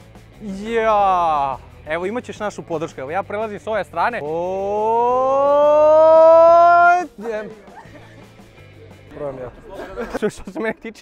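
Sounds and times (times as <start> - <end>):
man's drawn-out cheering shout: 4.5 - 7.2.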